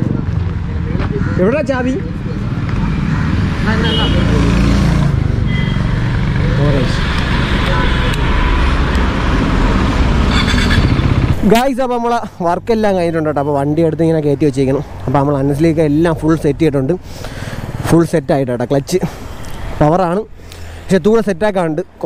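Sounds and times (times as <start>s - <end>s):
man talking: 11.4s - 17.1s, 17.8s - 19.2s, 19.8s - 22.0s.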